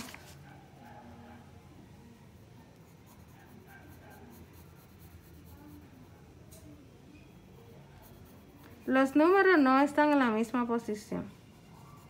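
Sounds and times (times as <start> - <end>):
pencil scratching on paper: 2.7 - 6.2, 7.7 - 9.6, 11.3 - 12.0.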